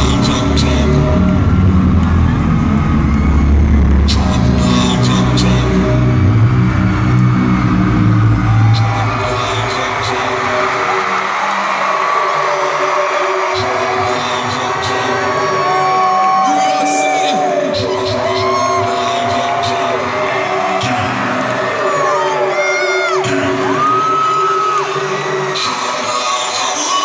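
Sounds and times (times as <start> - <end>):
rapper's voice: 0.0 - 2.5, 4.0 - 6.2, 8.5 - 24.1, 24.8 - 27.0
crowd noise: 0.0 - 27.0
hip-hop music with heavy bass: 0.0 - 27.0.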